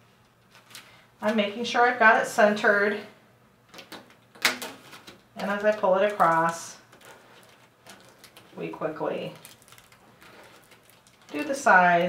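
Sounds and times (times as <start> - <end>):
plastic film rustling: 0.3 - 1.6, 3.7 - 12.0.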